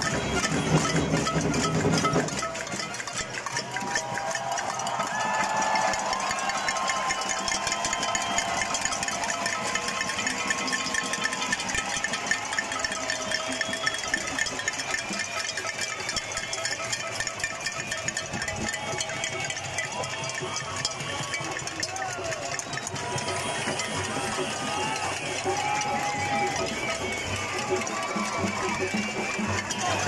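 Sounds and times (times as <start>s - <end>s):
crowd banging pots and pans: 0.0s - 30.0s
crowd shouting: 0.0s - 30.0s.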